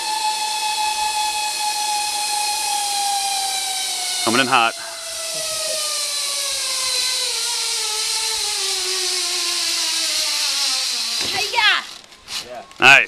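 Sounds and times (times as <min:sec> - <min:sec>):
zipline pulleys whining on cable: 0:00.0 - 0:13.0.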